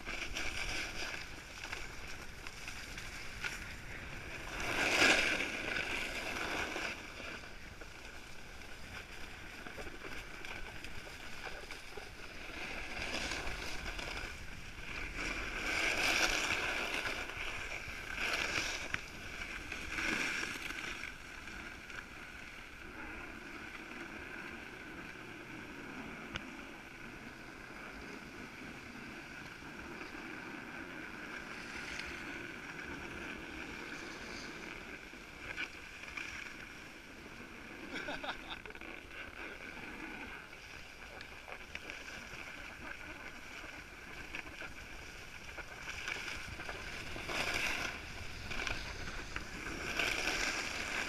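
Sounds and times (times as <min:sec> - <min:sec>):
snowboard scraping over snow: 0:00.0 - 0:51.0.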